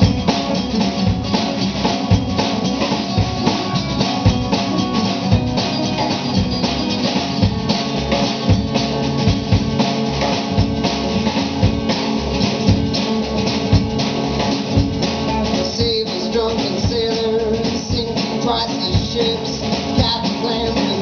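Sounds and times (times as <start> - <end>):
drum kit steady beat: 0.0 - 21.0
electric guitar: 0.0 - 21.0
strummed acoustic guitar: 0.0 - 21.0
upright bass: 0.0 - 21.0.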